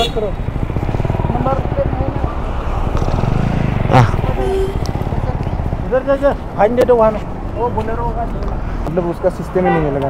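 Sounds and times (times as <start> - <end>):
motorcycle engine idling: 0.0 - 8.5.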